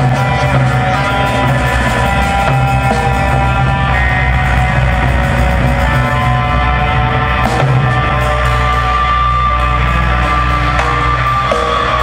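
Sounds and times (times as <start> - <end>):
guitar: 0.0 - 12.0
live band music: 0.0 - 12.0
strong bass: 0.0 - 12.0.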